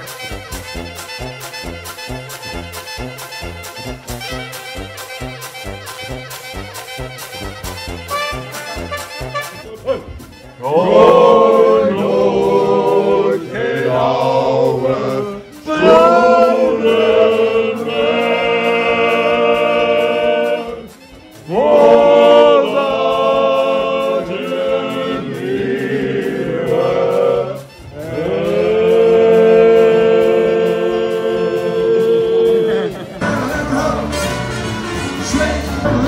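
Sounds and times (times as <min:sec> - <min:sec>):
men singing unaccompanied: 0:10.6 - 0:36.0.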